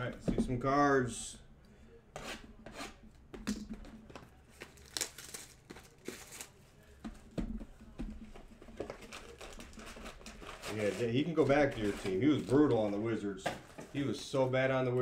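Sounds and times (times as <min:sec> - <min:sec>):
wrappers tearing and crinkling: 0:04.5 - 0:06.6, 0:08.8 - 0:12.7.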